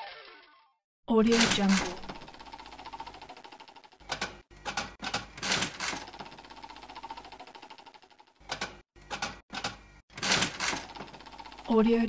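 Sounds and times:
slot machine reels clunking: 1.3s - 12.0s
slot machine reels ticking: 1.3s - 12.0s.

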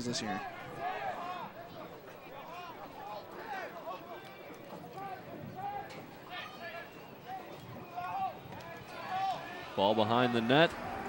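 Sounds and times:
distant players shouting: 0.0s - 11.0s.

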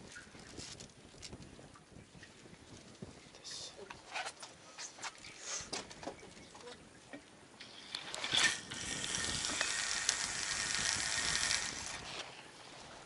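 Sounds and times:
fishing line whirring off reel: 7.6s - 12.4s.

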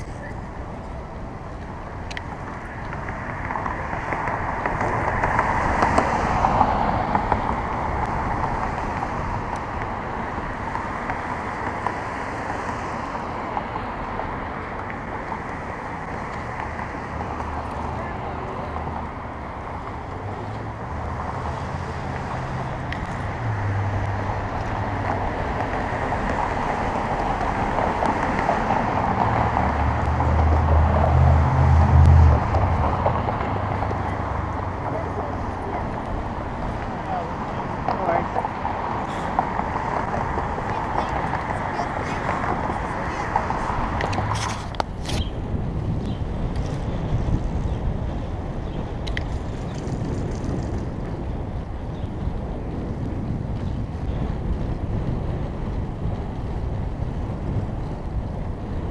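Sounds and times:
low vehicle engine hum: 0.0s - 58.9s
passing traffic: 0.0s - 58.9s
wind on camera microphone: 20.8s - 58.9s.

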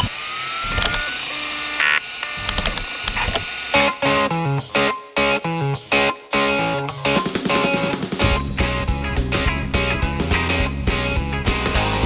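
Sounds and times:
hard drive whine spinning up: 0.0s - 4.3s.

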